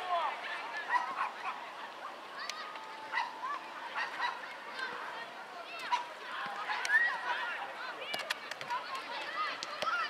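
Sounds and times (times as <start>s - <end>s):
children shouting: 0.0s - 8.1s.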